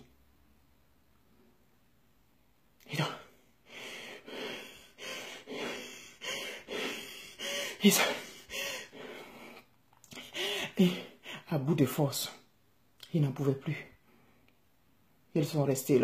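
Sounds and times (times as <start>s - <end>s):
woman gasping breaths: 3.6s - 11.4s.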